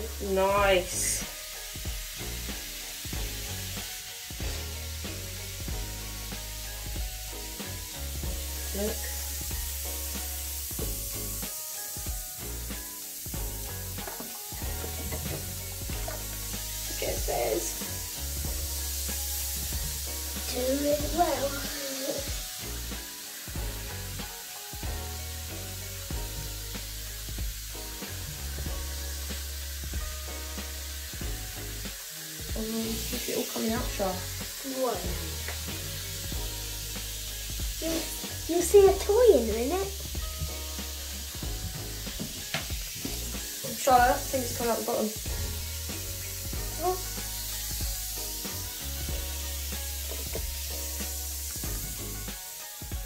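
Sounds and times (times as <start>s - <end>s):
bath bomb fizzing in water: 0.0s - 53.0s.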